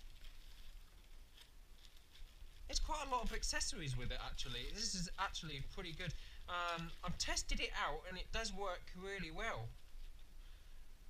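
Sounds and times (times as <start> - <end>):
plastic and cardboard rustling: 0.0 - 7.8.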